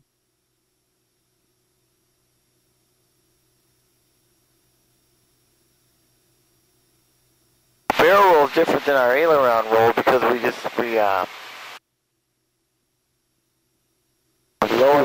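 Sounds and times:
faint steady hum: 0:00.0 - 0:15.0
person speaking: 0:07.9 - 0:11.4, 0:14.6 - 0:15.0.

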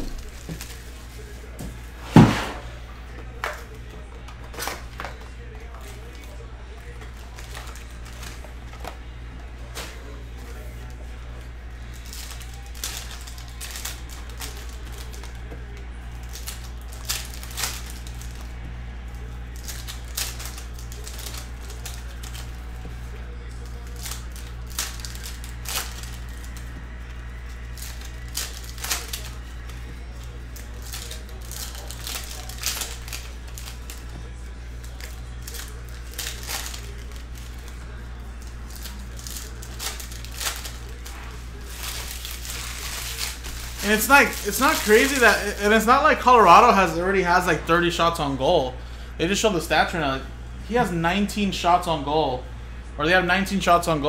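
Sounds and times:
foil packs crinkling: 0:00.0 - 0:01.7, 0:03.4 - 0:47.5
steady low hum: 0:00.0 - 0:54.0.

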